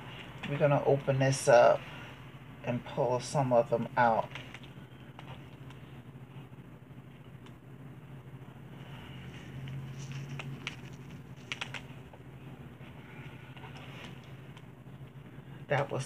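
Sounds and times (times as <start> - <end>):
low steady hum: 0.0 - 16.0
foil pan crackles: 9.8 - 12.0.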